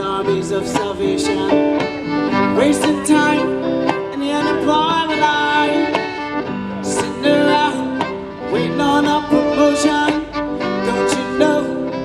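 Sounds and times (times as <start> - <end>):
guitar accompaniment: 0.0 - 12.0.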